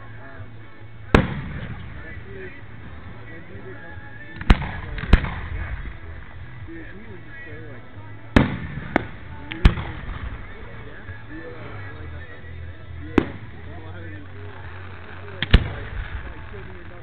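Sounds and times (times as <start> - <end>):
fireworks bursting with echo: 0.0 - 17.0.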